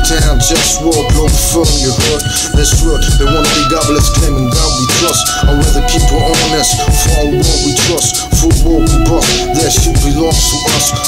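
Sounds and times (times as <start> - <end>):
hip-hop beat with heavy bass: 0.0 - 11.0
person rapping: 0.0 - 11.0.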